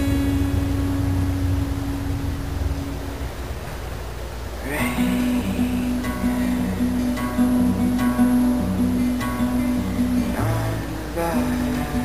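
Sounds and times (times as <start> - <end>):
acoustic guitar note ringing: 0.0 - 12.0
low rumble of recording noise: 0.0 - 12.0.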